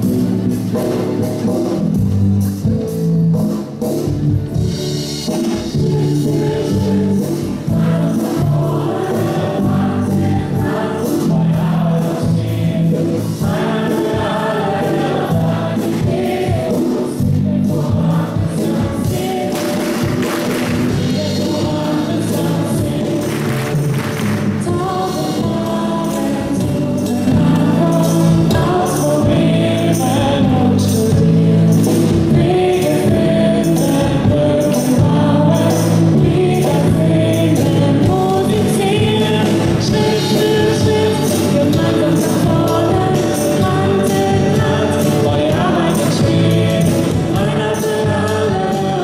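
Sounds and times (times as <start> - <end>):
live band playing: 0.0 - 49.0
group singing: 5.4 - 49.0.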